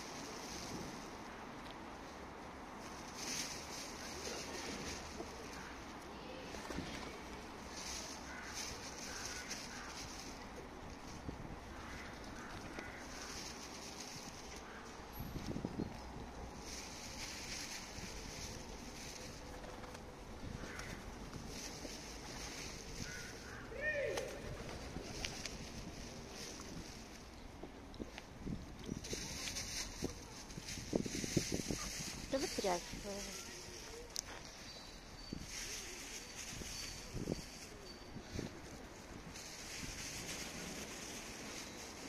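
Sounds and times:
steady outdoor background hum: 0.0 - 42.0.

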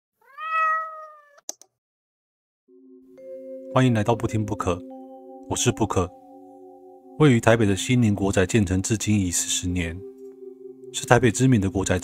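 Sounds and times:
cat meowing: 0.2 - 1.4.

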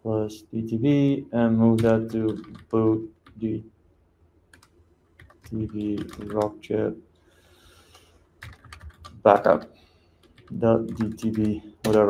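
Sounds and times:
faint room hiss: 0.0 - 12.0
computer keyboard keystrokes: 1.8 - 3.4, 4.5 - 6.5, 8.4 - 9.6, 10.2 - 12.0.

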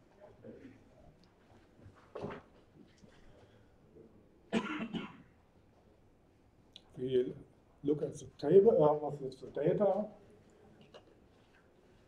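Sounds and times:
man coughing: 4.5 - 5.2.

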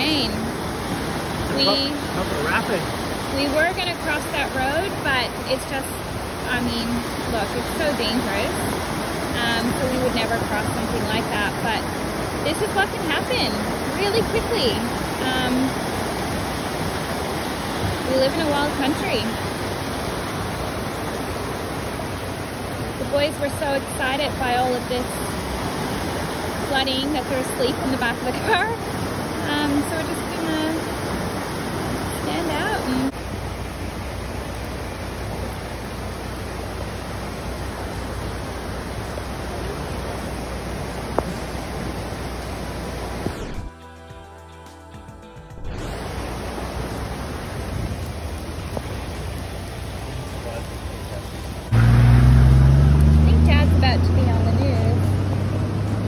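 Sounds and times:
floodwater rushing through rapids: 0.0 - 43.7, 45.7 - 56.0
quiet music: 43.7 - 46.6.

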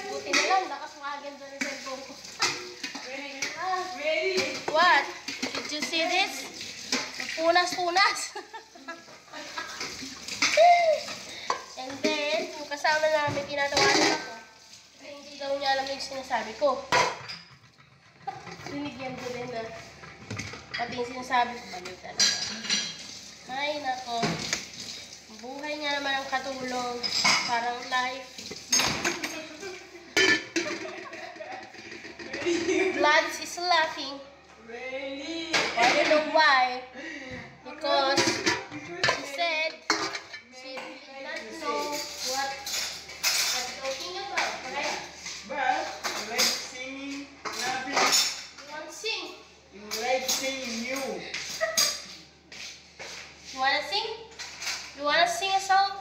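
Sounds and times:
dishes clattering: 0.0 - 0.9, 1.6 - 3.6, 4.2 - 14.4, 15.7 - 23.4, 25.8 - 34.0, 35.5 - 36.4, 37.9 - 48.7, 49.9 - 52.2, 54.2 - 55.6
crockery and metal clinking: 1.6 - 3.6, 4.3 - 14.4, 15.5 - 34.0, 38.0 - 48.8, 49.9 - 52.2, 54.2 - 55.6.

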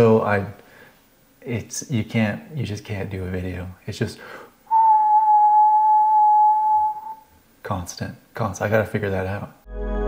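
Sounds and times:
man whistling high note: 4.7 - 7.3.

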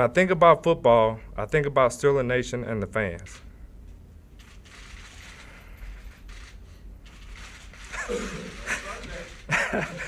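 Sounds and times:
man laughing in halting bursts: 7.9 - 10.0.

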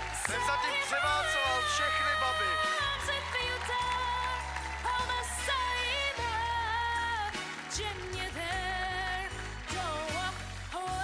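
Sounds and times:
pop ballad backing track: 0.0 - 11.0.

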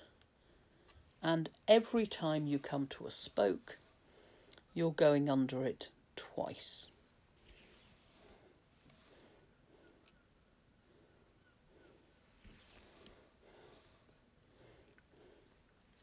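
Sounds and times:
soft handling rustles: 7.3 - 9.3, 12.1 - 16.0.

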